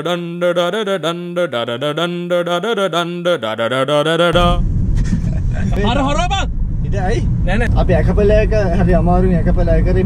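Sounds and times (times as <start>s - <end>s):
men singing a cappella: 0.0s - 4.6s.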